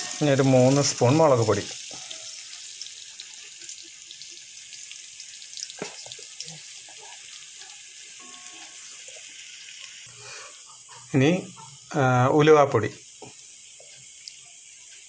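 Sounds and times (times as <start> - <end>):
fruit sizzling in hot oil: 0.0 - 15.0.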